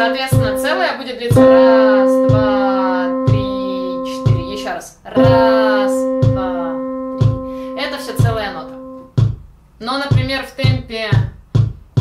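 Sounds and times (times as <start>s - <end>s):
electronic keyboard note: 0.0s - 9.1s
metronome beat: 0.0s - 9.4s.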